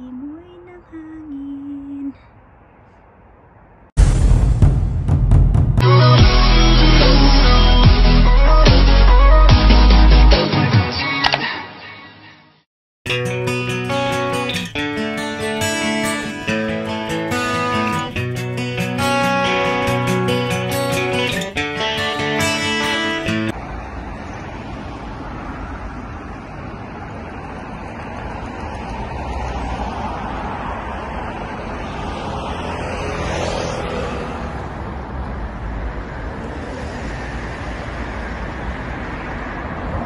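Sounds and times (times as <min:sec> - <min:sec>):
road traffic noise: 0:00.0 - 0:04.0, 0:05.8 - 0:40.0
acoustic guitar music: 0:13.1 - 0:23.5.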